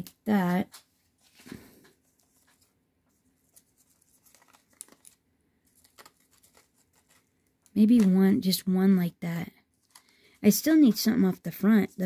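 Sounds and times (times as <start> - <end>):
paper rustling: 0.4 - 8.2, 9.7 - 12.0.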